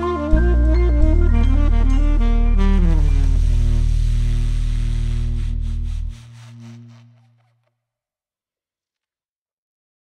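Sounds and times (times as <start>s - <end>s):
jazz backing track: 0.0s - 7.0s.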